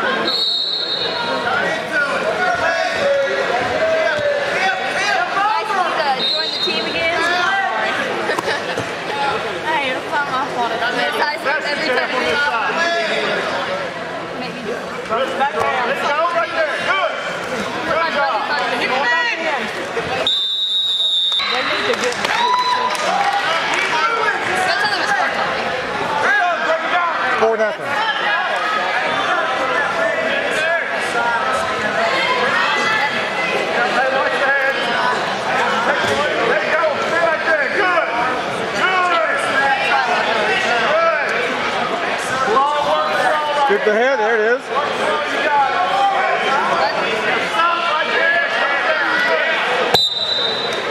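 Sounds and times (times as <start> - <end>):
crowd shouting and cheering: 0.0 - 50.9.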